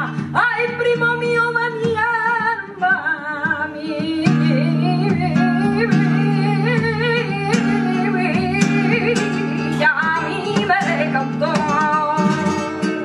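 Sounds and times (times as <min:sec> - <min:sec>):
acoustic guitar chords: 0:00.0 - 0:13.0
woman singing flamenco: 0:00.0 - 0:13.0.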